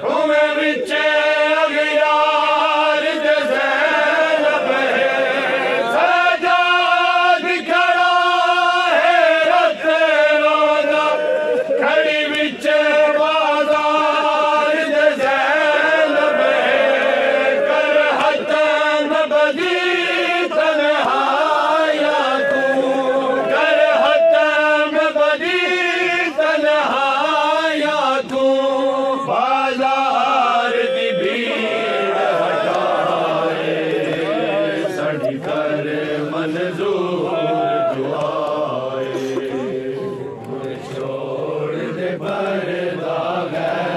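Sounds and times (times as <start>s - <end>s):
men chanting a mourning lament: 0.0s - 43.9s.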